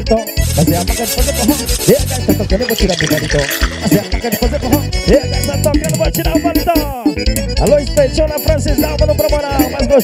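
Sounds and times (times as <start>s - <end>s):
keyboard melody over driving beat: 0.0s - 10.0s.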